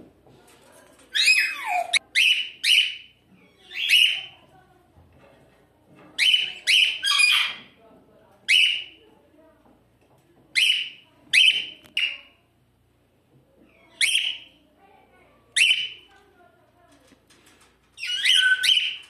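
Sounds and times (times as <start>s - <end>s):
cockatiel chirping: 13.9s - 14.5s, 15.6s - 16.0s, 18.0s - 19.0s.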